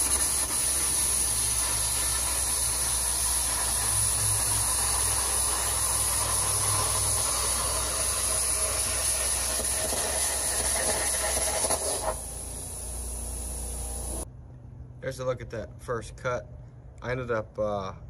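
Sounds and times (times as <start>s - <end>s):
plasma cutter arc hissing: 0.0s - 14.2s.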